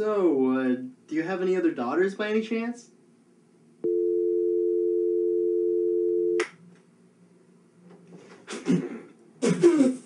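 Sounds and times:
telephone dial tone: 3.8 - 6.4.

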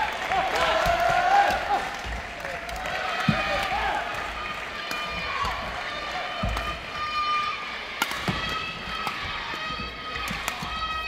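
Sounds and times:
crowd voices: 0.0 - 11.0
rackets smacking shuttlecock: 7.9 - 11.0.

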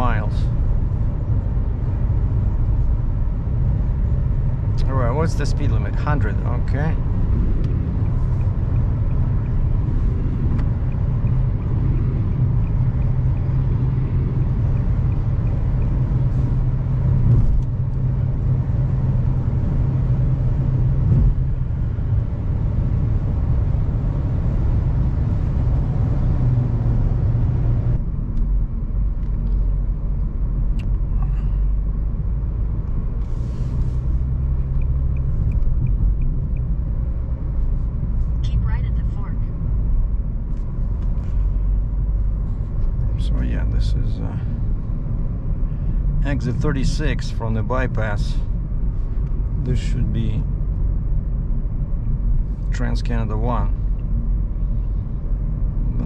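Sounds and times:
low engine drone: 0.0 - 56.0
road and tyre noise: 0.0 - 56.0.

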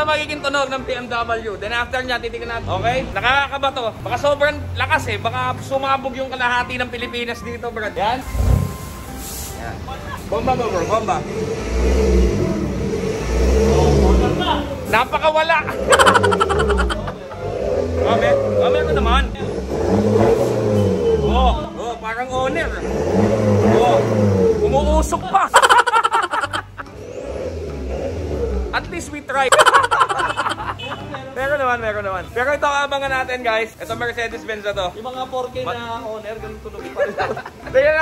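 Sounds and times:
diesel engine rumbling: 0.7 - 32.4.

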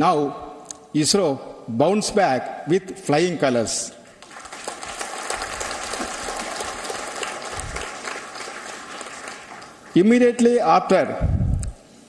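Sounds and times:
audience applauding: 4.2 - 10.0.

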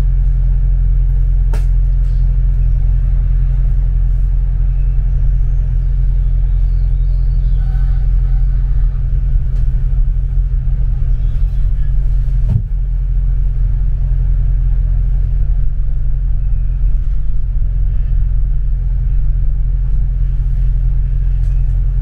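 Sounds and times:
bus engine rumble: 0.0 - 22.0.

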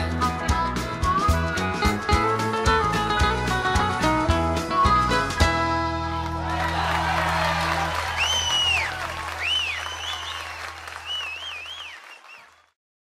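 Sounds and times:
crowd applause and cheering: 5.4 - 12.8
shrill whistles: 8.0 - 12.8.

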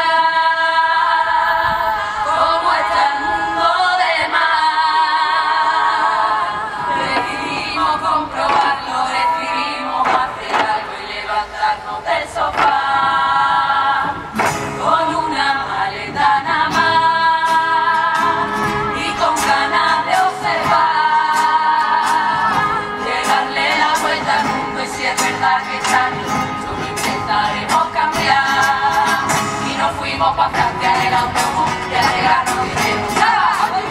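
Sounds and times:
women's chorus singing in unison: 0.0 - 33.9.

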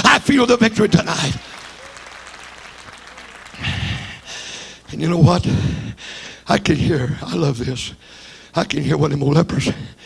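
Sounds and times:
congregation clapping: 0.0 - 6.4.

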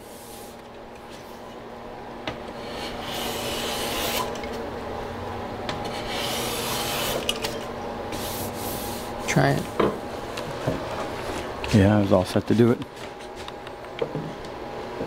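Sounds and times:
hand plane shaving wood: 2.6 - 4.4, 6.0 - 7.3.

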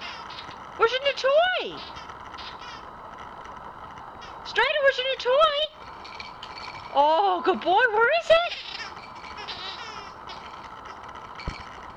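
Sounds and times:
puppy whining: 8.4 - 11.1.

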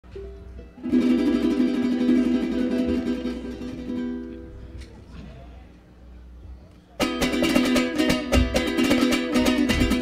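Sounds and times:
guitars strumming a chord: 0.8 - 4.7, 7.0 - 10.0.

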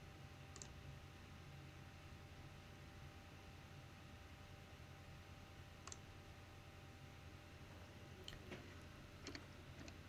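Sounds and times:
low steady hum: 0.0 - 10.0
computer mouse click: 0.5 - 0.8, 5.8 - 6.1, 9.2 - 10.0.

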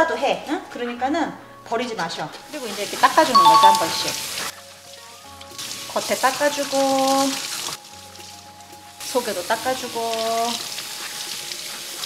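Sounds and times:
faucet water splashing: 2.6 - 12.0.

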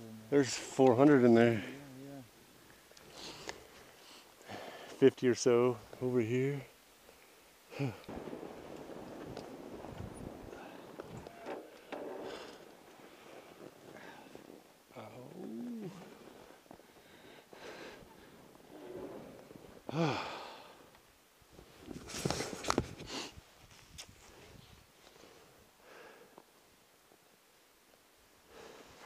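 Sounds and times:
person wordless vocal sounds: 7.7 - 8.1, 14.9 - 16.2
tyre and wind noise on snow: 7.8 - 20.8, 21.5 - 25.6.

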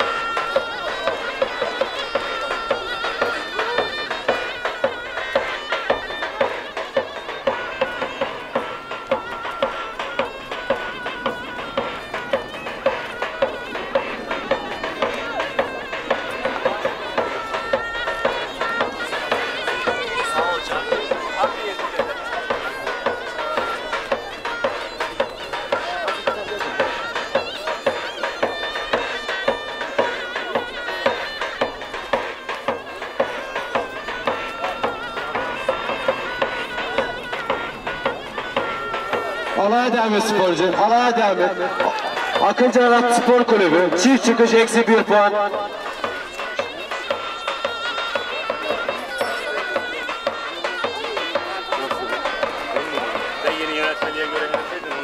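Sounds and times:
shrill reedy pipe melody: 0.0 - 55.0.

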